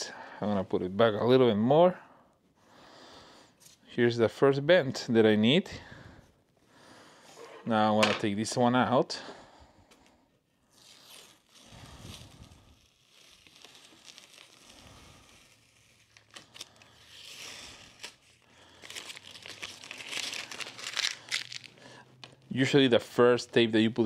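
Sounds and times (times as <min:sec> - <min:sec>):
tape peeling and crinkling: 0:10.6 - 0:22.5.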